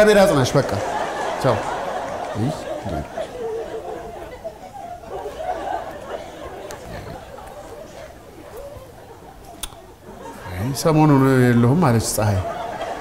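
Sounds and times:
quiet talk and chatter: 0:00.0 - 0:13.0
man speaking: 0:02.4 - 0:03.1.

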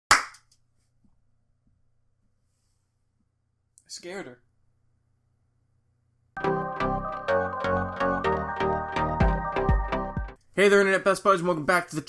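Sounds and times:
hand clap: 0:00.1 - 0:00.5.

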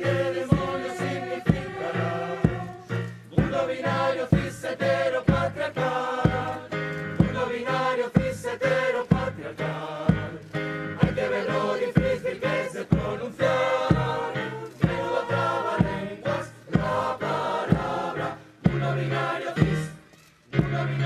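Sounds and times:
steady beat: 0:00.0 - 0:20.0
choir singing pop song: 0:00.0 - 0:21.0.

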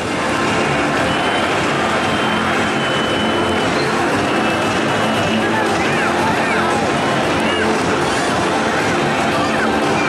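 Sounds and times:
large stadium crowd noise: 0:00.0 - 0:10.0.

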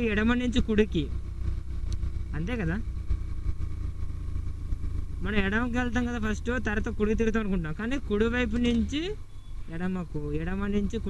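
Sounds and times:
man speaking: 0:00.0 - 0:01.2, 0:02.3 - 0:02.9, 0:05.2 - 0:11.0
motorcycle engine rumble: 0:00.0 - 0:11.0.

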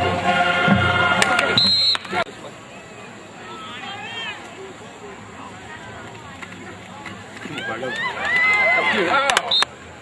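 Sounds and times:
crowd cheering and yelling: 0:00.0 - 0:09.7.

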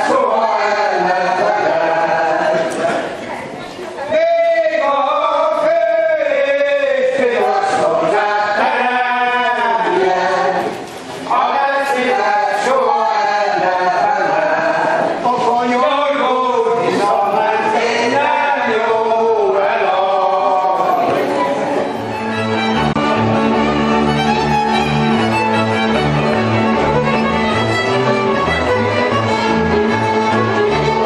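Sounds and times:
people singing folk song: 0:00.0 - 0:03.1, 0:04.2 - 0:31.0.

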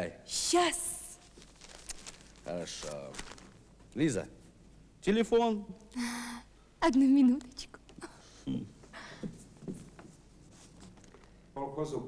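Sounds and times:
newspaper rustling: 0:01.2 - 0:03.8.

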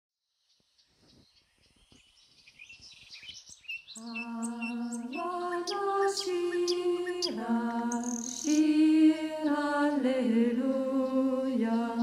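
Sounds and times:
songbirds chirping: 0:00.2 - 0:12.0.

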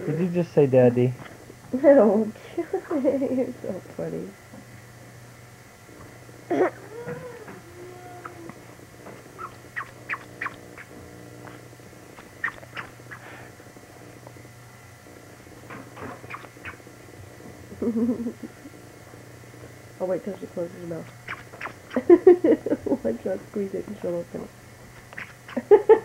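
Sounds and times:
baby vocalizing: 0:06.5 - 0:08.6
short high squeaks and clicks: 0:09.4 - 0:10.9, 0:12.4 - 0:13.2, 0:15.7 - 0:16.8, 0:21.2 - 0:22.0, 0:25.1 - 0:25.6.

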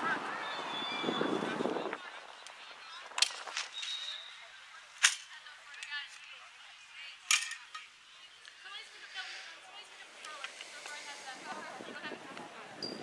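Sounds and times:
faint distant voices: 0:00.0 - 0:13.0.

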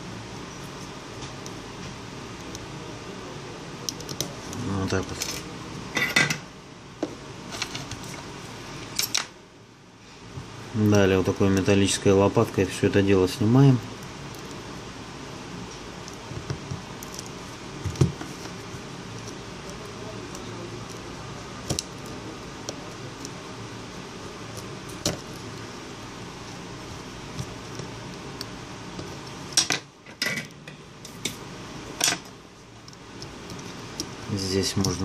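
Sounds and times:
steady background hiss: 0:00.0 - 0:35.0.

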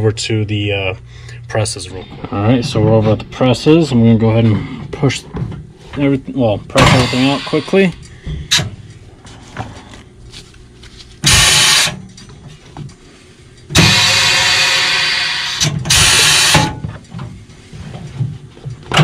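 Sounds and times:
pneumatic press hissing: 0:06.8 - 0:07.9, 0:11.2 - 0:12.0, 0:13.7 - 0:16.8.

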